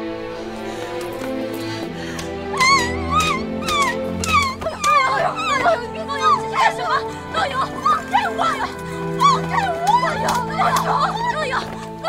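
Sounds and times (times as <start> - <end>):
dramatic background music: 0.0 - 12.0
woman crying and wailing: 2.2 - 12.0
people calling out: 2.5 - 12.0.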